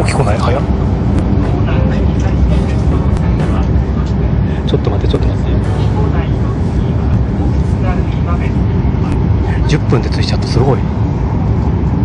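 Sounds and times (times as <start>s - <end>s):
train rumble inside cabin: 0.0s - 12.0s.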